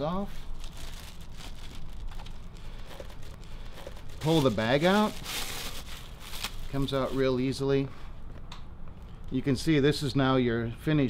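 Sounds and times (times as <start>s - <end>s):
plastic bag crinkling: 0.4s - 7.5s.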